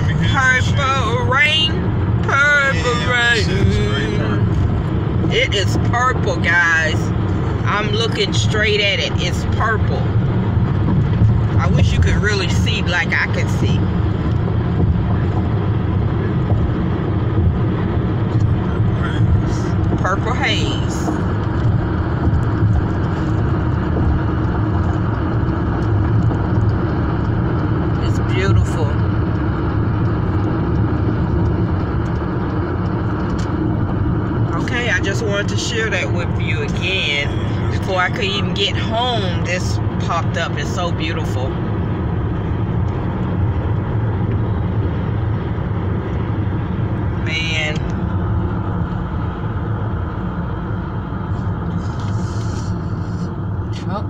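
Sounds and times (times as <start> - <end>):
car engine running: 0.0 - 54.0
tyre and road noise: 0.0 - 54.0.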